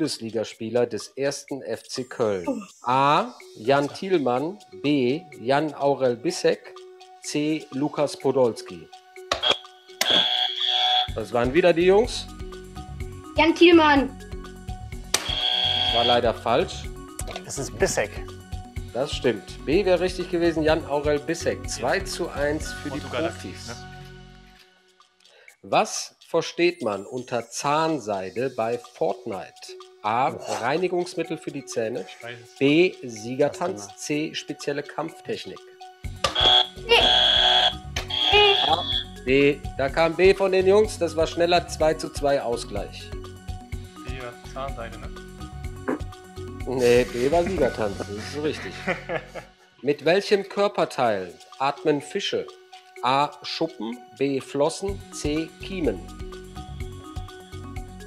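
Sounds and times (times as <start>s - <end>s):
quiz buzzer tone: 9.3s - 11.2s, 15.2s - 16.4s, 36.2s - 39.2s.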